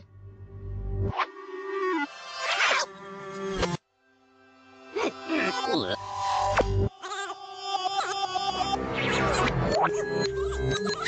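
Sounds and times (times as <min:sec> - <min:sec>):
cartoon score music: 0:04.9 - 0:11.0.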